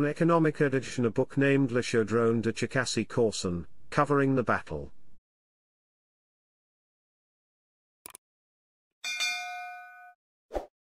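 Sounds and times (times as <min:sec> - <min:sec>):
metallic notification ding: 0:09.0 - 0:10.2.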